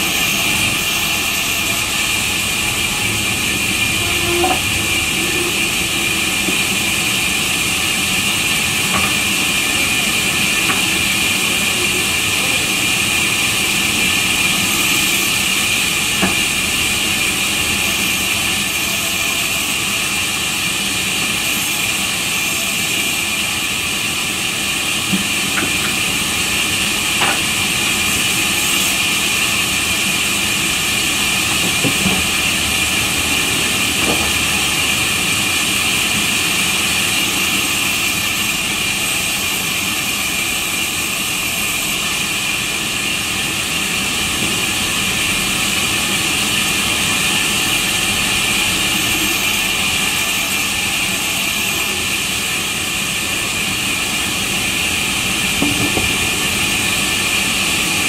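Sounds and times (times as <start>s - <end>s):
band saw whining: 0.0s - 58.0s.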